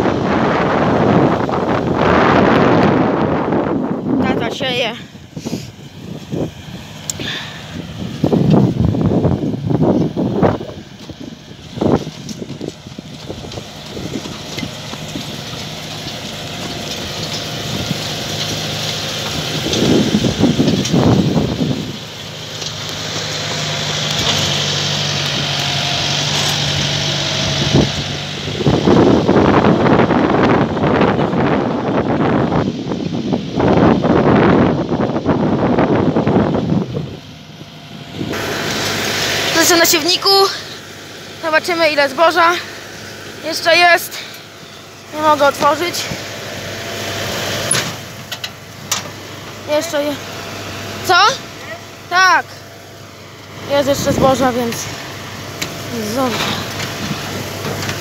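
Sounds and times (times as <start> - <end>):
wind on microphone: 0.0 - 6.6, 7.2 - 14.4, 27.3 - 37.3
tractor diesel engine running: 0.0 - 58.0.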